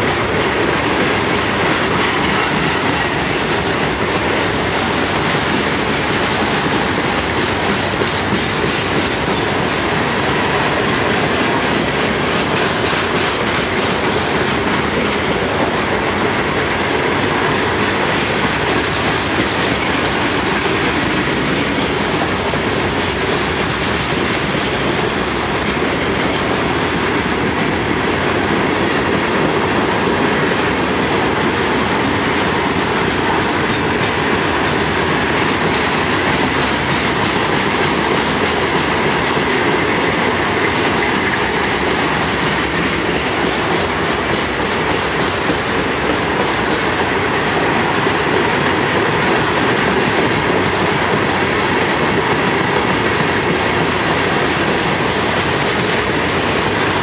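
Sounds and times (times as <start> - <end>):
freight train wheels rumbling: 0.0 - 57.0
wheels clicking over rail joints: 0.0 - 57.0.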